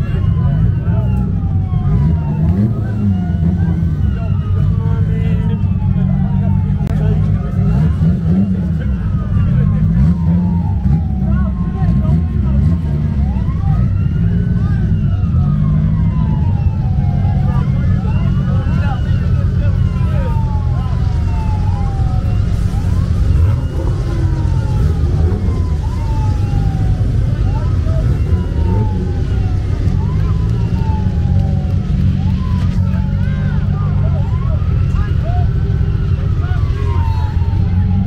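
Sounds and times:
crowd chatter: 0:00.0 - 0:38.0
sirens wailing: 0:00.0 - 0:38.0.

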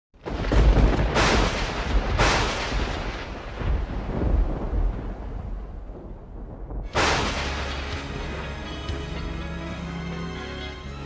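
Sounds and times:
thunder crash and rumble: 0:00.2 - 0:08.7.

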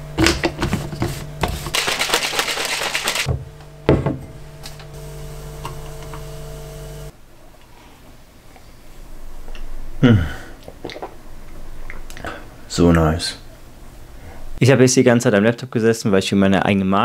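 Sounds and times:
shaker bottle sloshing and rattling: 0:01.4 - 0:03.3.

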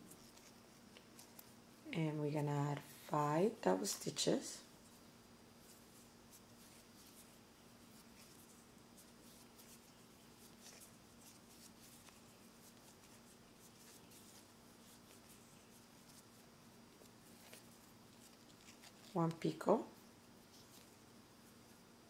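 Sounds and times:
thread ticks and rustles: 0:00.0 - 0:01.8, 0:03.8 - 0:21.8
low steady hum: 0:00.0 - 0:22.0.

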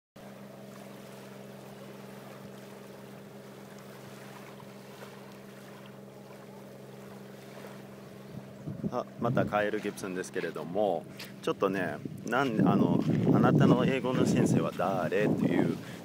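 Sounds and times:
steady low hum: 0:00.2 - 0:16.0.

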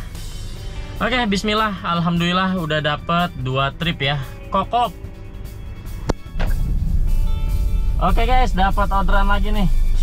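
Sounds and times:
background music: 0:00.0 - 0:10.0
car interior rumble: 0:05.3 - 0:10.0.

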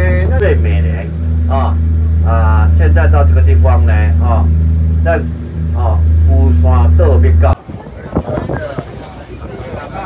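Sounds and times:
boat engine drone: 0:00.0 - 0:10.0.

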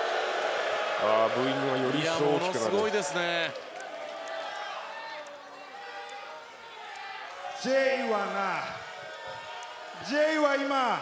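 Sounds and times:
man talking: 0:01.0 - 0:03.5.

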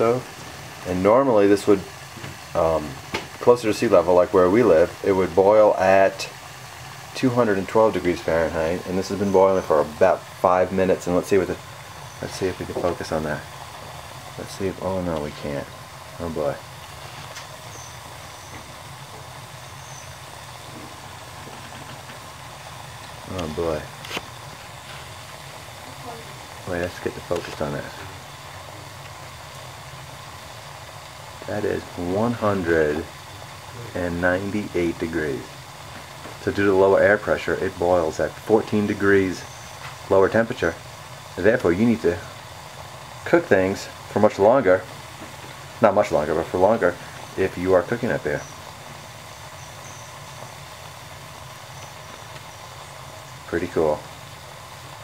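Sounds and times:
kettle water boiling: 0:00.0 - 0:55.0.

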